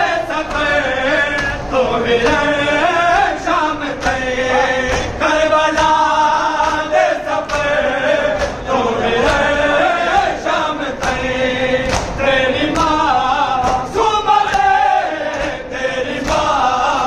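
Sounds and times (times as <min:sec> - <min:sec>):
men chanting a lament: 0:00.0 - 0:17.0.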